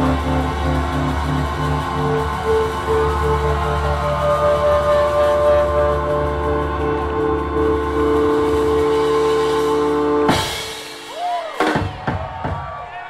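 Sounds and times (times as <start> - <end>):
low bass drone: 0.0 - 10.7
band holding sustained chord: 0.0 - 11.0.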